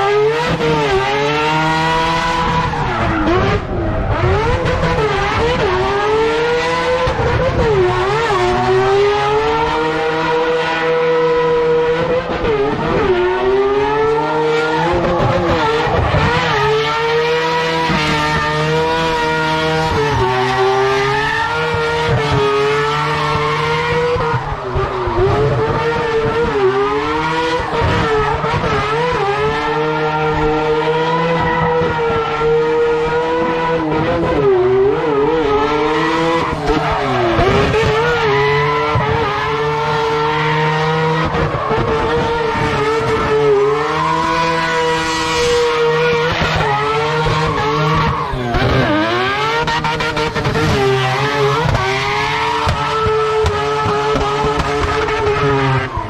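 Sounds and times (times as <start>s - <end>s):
car engine revving on limiter: 0.0s - 56.0s.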